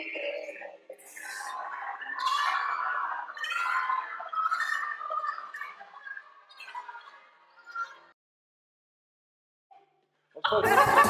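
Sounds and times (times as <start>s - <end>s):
man laughing hard: 10.5s - 11.0s.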